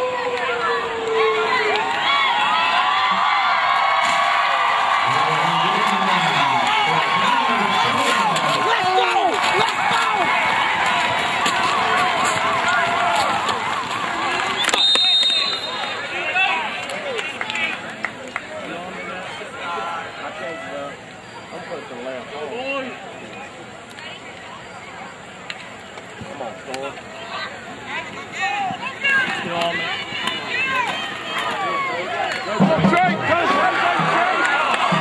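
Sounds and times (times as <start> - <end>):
crowd cheering and shouting: 0.0 - 23.4, 27.1 - 35.0.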